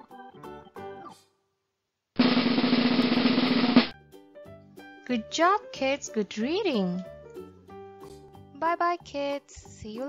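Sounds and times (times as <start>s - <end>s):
snare drum roll: 2.2s - 3.9s.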